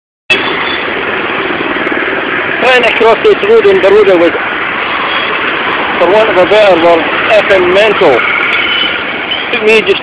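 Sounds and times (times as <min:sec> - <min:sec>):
busy road traffic: 0:00.3 - 0:10.0.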